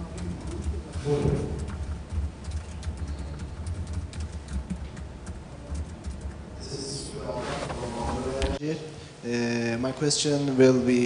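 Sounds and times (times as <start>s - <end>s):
sound system hum: 0.0s - 9.3s.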